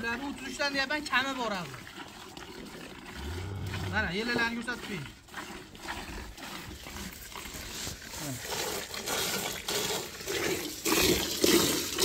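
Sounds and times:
milk squirting into metal bucket: 0:00.0 - 0:12.0.

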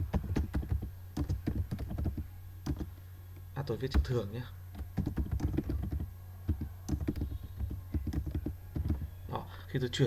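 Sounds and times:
computer keyboard typing: 0:00.0 - 0:02.9, 0:03.9 - 0:09.2.

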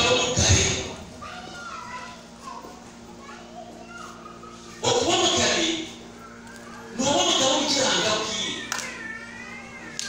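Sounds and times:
loud voice speaking: 0:04.8 - 0:06.0, 0:07.0 - 0:08.7.

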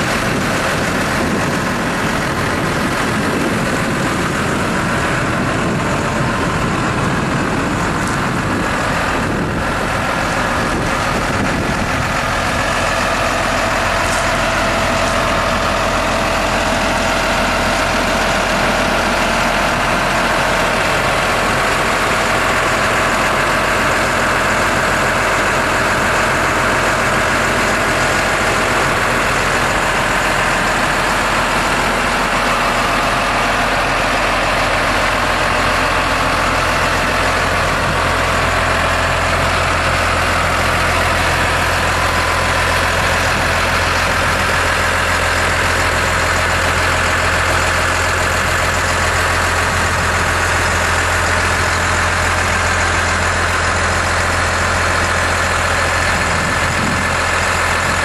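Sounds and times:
tractor diesel engine idling: 0:00.0 - 0:58.0.

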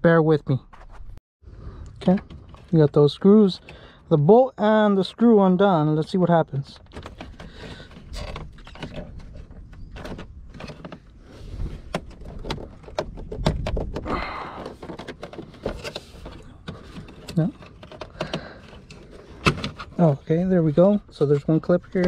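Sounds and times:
plastic scraping: 0:06.0 - 0:22.0
plastic trim clicks and knocks: 0:11.9 - 0:15.9.

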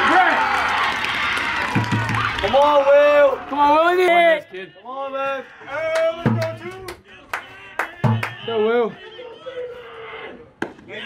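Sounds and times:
baseball smack: 0:10.6 - 0:10.9.

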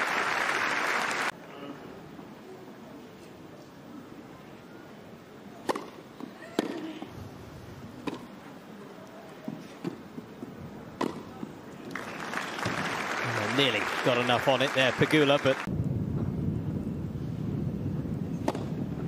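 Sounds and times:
crowd applause: 0:00.0 - 0:01.3, 0:11.9 - 0:15.7
tennis racket hitting ball: 0:05.6 - 0:06.0, 0:11.0 - 0:11.3.

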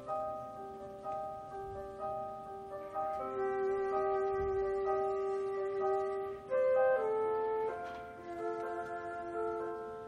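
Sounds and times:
chamber orchestra playing: 0:02.8 - 0:10.0.

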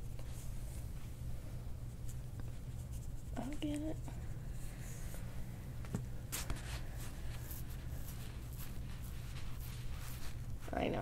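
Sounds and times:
low room hum: 0:00.0 - 0:11.0
comb scratching through hair: 0:01.9 - 0:04.3, 0:06.3 - 0:11.0.

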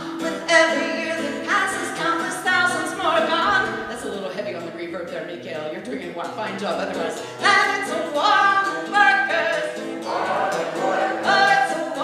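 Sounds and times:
woman singing into a microphone: 0:00.0 - 0:04.4, 0:06.7 - 0:09.8
acoustic guitar: 0:00.0 - 0:12.0
many voices singing along: 0:07.5 - 0:12.0.

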